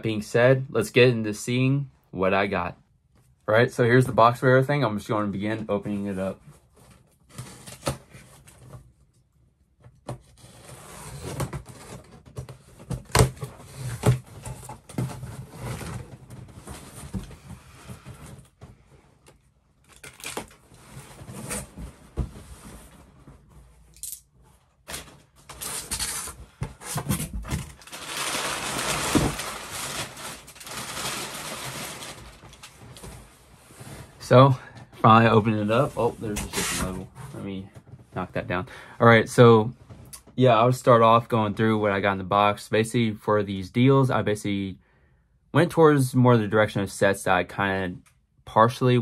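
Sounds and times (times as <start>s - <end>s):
cardboard box scraping and tearing: 10.3s - 12.2s, 13.1s - 17.2s, 25.5s - 32.4s
packing paper rustling: 24.9s - 33.2s.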